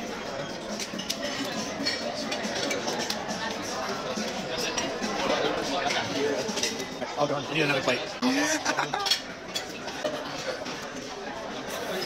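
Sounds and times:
diners chattering: 0:00.0 - 0:12.0
plates and cutlery clinking: 0:00.3 - 0:07.1, 0:08.7 - 0:12.0.

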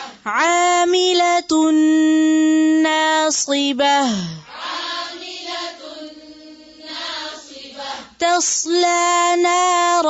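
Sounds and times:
woman chanting verse: 0:00.0 - 0:10.0.

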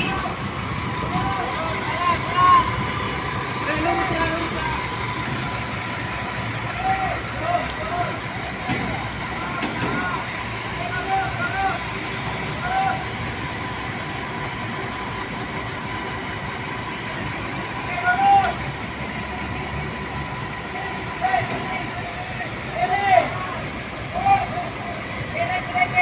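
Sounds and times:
diesel engines running: 0:00.0 - 0:26.0
workers shouting: 0:00.0 - 0:26.0.

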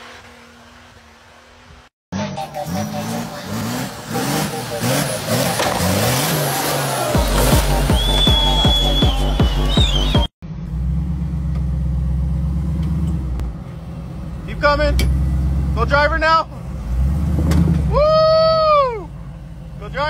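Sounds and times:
engine running at low revs: 0:00.0 - 0:20.0
engine revving hard in mud: 0:02.2 - 0:13.4, 0:14.4 - 0:18.0
music with heavy beat: 0:04.4 - 0:10.3.

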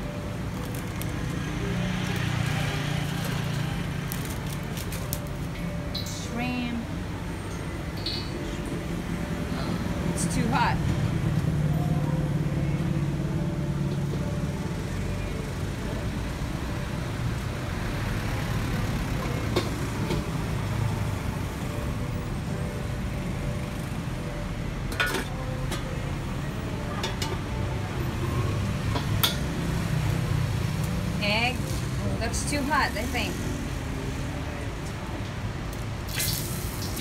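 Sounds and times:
gas burner roaring: 0:24.8 - 0:33.8, 0:35.7 - 0:37.0.

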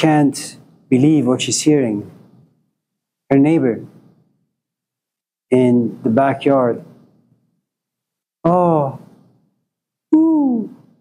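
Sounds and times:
man moaning: 0:10.1 - 0:10.7.

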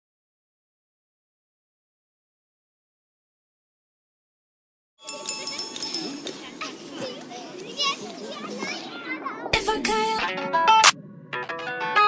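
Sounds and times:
children chattering and playing: 0:05.0 - 0:10.6
music: 0:09.6 - 0:12.0.

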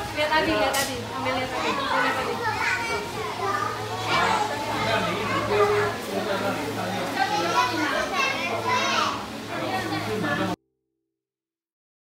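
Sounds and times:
children chattering and calling: 0:00.0 - 0:10.6.

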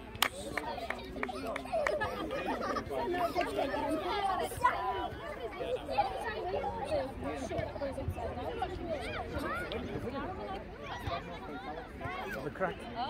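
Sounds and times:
people talking and calling out: 0:00.0 - 0:13.0.

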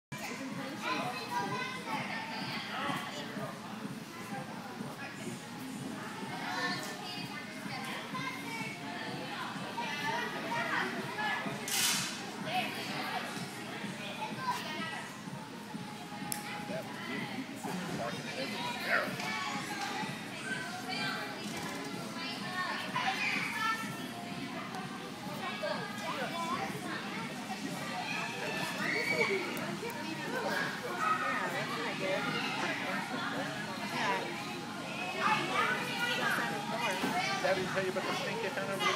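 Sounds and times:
children talking and calling: 0:00.1 - 0:38.9.

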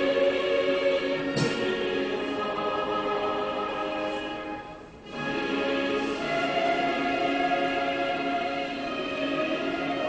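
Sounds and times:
choir singing an anthem: 0:00.0 - 0:10.0
orchestral accompaniment: 0:00.0 - 0:10.0.

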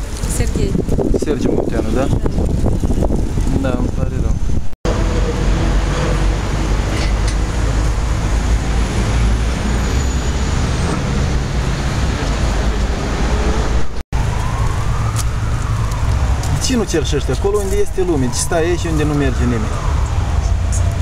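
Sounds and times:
city street traffic rumble: 0:00.0 - 0:21.0.

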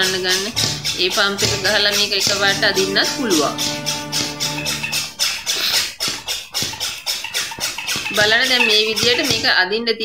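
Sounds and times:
hand pump hissing: 0:00.0 - 0:09.6.

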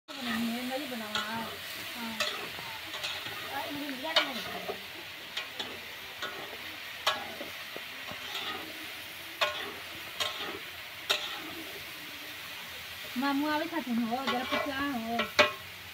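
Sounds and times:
food frying and sizzling: 0:00.0 - 0:15.9
faint voices: 0:00.1 - 0:15.2
metal spatula clinking on pan: 0:02.2 - 0:03.5, 0:04.1 - 0:07.5, 0:08.1 - 0:08.7, 0:09.4 - 0:11.5, 0:14.2 - 0:15.6.

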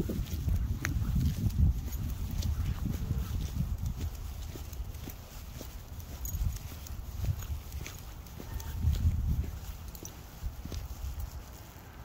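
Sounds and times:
footsteps on wet pavement: 0:00.0 - 0:12.0
low wind: 0:00.0 - 0:12.0.

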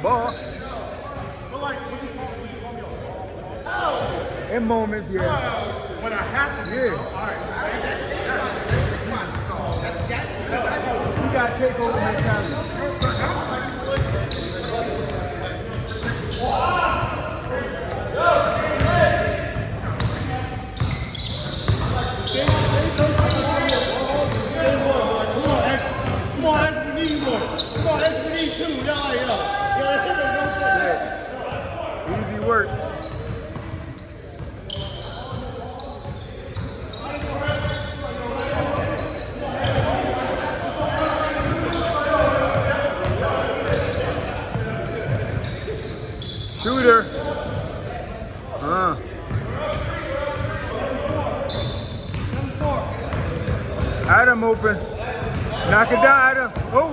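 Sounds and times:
players' voices echoing: 0:00.0 - 0:56.9.

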